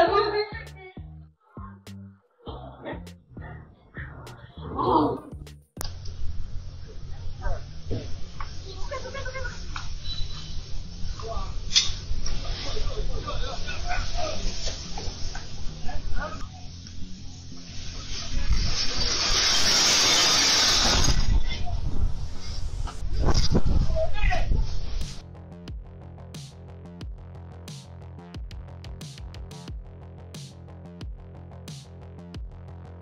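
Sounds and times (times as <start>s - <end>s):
loud hissing rush: 6.2s - 25.2s.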